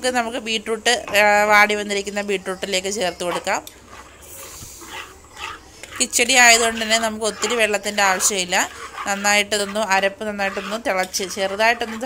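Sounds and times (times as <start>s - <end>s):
spatula scraping in a pan: 1.2s - 12.0s.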